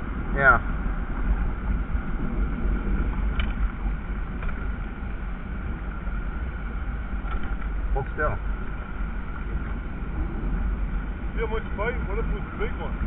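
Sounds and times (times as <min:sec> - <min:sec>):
wind rumble on microphone: 0:00.0 - 0:13.0
small click: 0:03.3 - 0:03.6, 0:04.4 - 0:04.6, 0:07.2 - 0:07.7.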